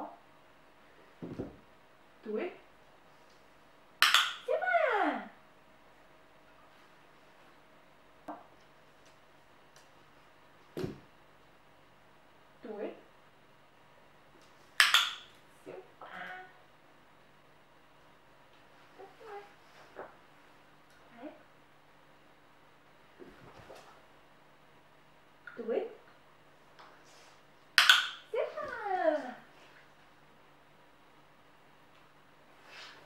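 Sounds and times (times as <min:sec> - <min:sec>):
woman speaking: 0:02.2 - 0:02.7, 0:04.5 - 0:05.4, 0:12.6 - 0:13.1, 0:25.6 - 0:26.0, 0:28.3 - 0:29.5.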